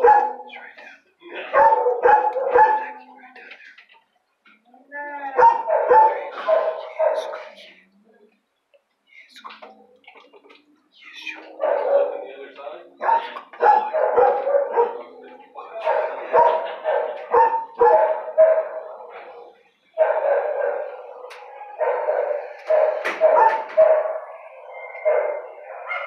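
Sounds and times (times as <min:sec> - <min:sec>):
dog barking: 0:00.0 - 0:00.6, 0:01.4 - 0:03.1, 0:05.4 - 0:07.6, 0:11.4 - 0:26.0.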